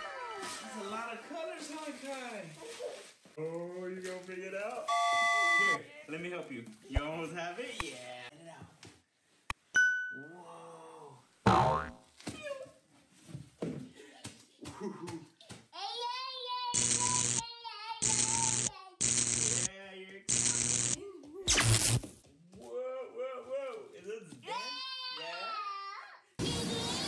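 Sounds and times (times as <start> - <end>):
small child vocalising: 16.6 - 19.2.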